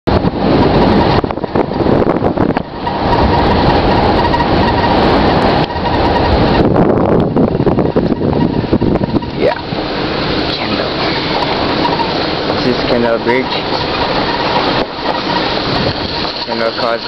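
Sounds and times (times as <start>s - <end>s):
car driving on gravel: 0.1s - 17.0s.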